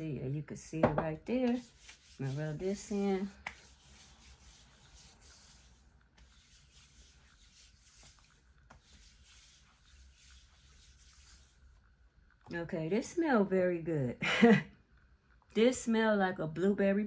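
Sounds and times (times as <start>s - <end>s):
hand rubbing oil into skin: 1.5s - 12.0s.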